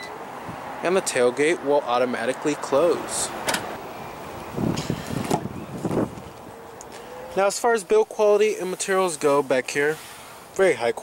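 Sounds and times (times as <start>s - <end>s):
car door latch clicks: 3.4s - 3.8s.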